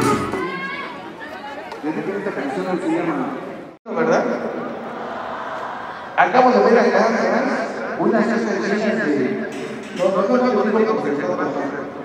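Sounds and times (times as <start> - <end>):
street crowd chatter: 0.0 - 6.4.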